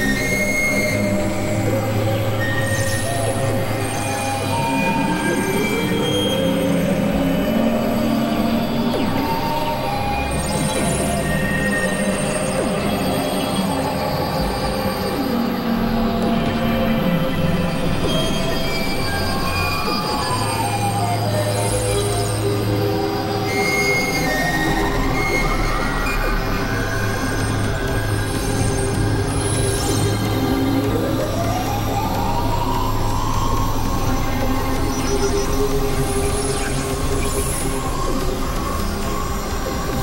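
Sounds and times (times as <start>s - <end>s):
synthesizer drone and noise music: 0.0s - 40.0s.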